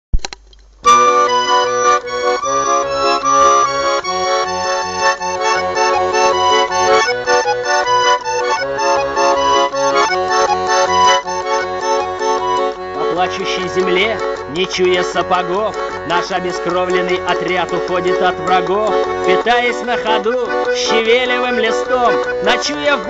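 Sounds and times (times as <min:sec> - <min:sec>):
short click: 0:00.2 - 0:00.7
button accordion playing: 0:00.8 - 0:23.0.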